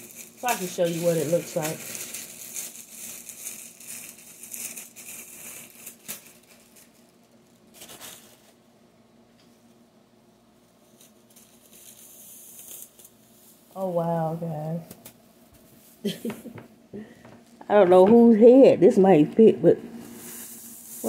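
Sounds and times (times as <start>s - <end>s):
thin plastic crinkling: 0.0s - 8.6s, 10.7s - 13.8s, 20.0s - 21.0s.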